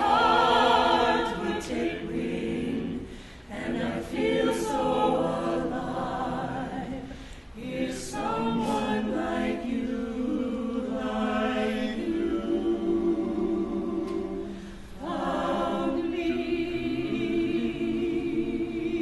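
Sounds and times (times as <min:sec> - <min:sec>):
vocal ensemble singing a cappella: 0:00.0 - 0:19.0.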